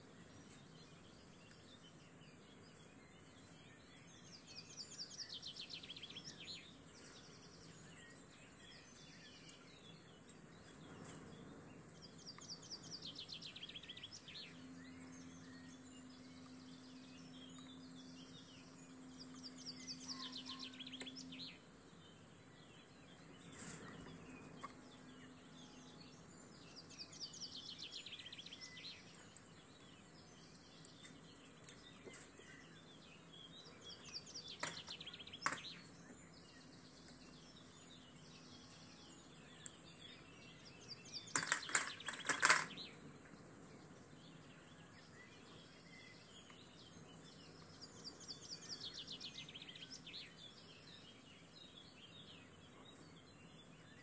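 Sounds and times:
songbird trilling: 19.1s - 21.5s.

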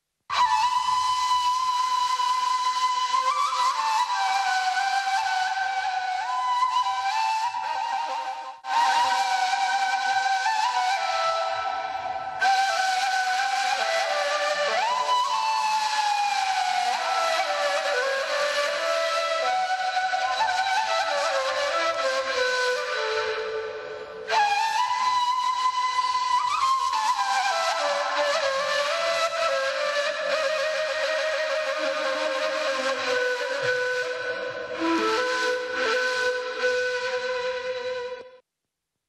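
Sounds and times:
flute gliding down in pitch: 0.3s - 38.4s.

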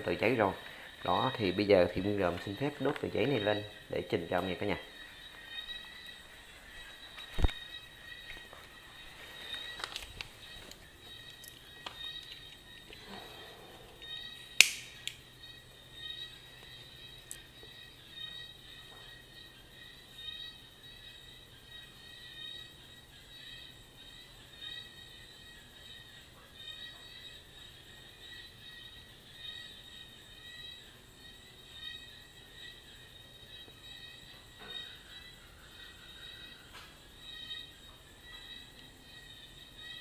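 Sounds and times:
sharp clicks: 14.6s - 15.2s.

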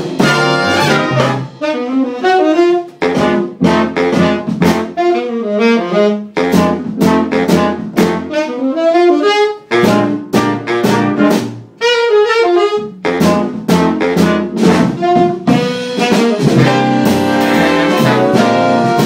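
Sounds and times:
big band horn section playing: 0.0s - 19.0s.

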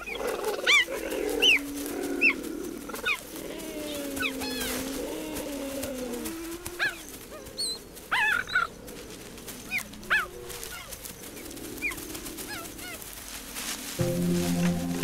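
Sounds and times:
cheetahs chirping: 0.0s - 15.0s.

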